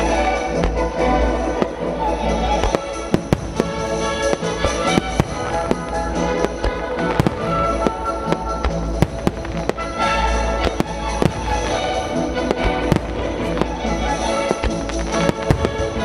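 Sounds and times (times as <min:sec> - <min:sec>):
fireworks bursting: 0:00.0 - 0:16.0
music playing: 0:00.0 - 0:16.0.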